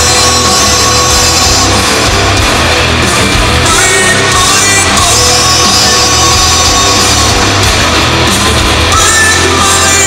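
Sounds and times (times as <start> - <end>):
bass guitar: 0.0 - 10.0
distorted electric guitars: 0.0 - 10.0
drums: 0.0 - 10.0.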